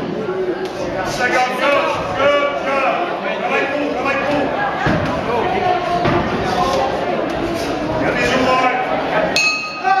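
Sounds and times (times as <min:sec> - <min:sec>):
crowd voices: 0:00.0 - 0:10.0
boxing ring bell ringing: 0:09.4 - 0:10.0.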